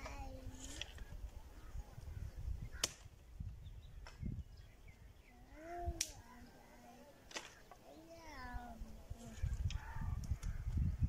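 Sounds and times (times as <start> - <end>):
firewood being chopped: 2.8 - 3.1.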